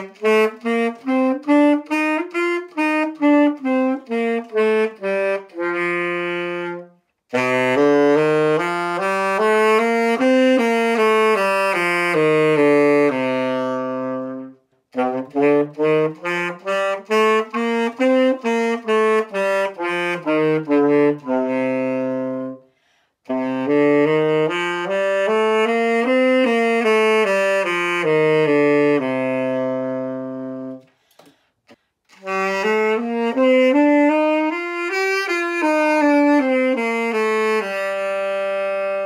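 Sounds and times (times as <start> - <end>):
tenor saxophone playing scales: 0.0 - 31.1, 31.7 - 39.0.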